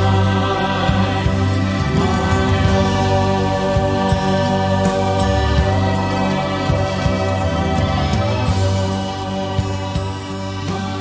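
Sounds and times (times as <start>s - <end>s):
country gospel music: 0.0s - 11.0s.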